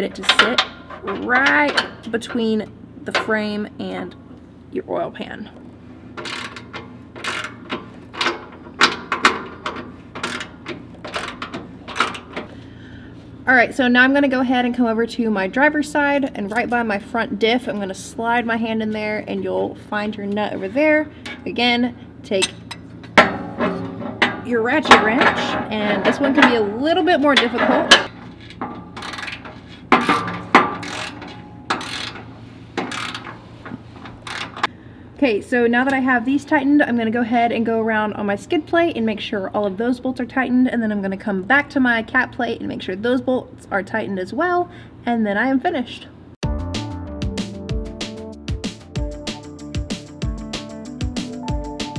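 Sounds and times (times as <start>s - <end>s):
ratcheting wrench clicking: 6.2s - 12.5s, 28.4s - 33.4s, 34.1s - 34.7s.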